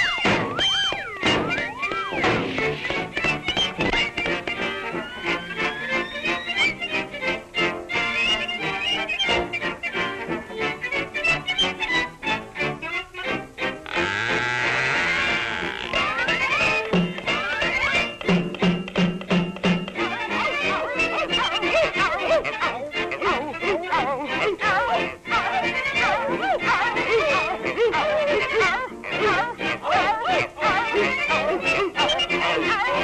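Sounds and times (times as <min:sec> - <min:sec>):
cartoon orchestral music: 0:00.0 - 0:33.0.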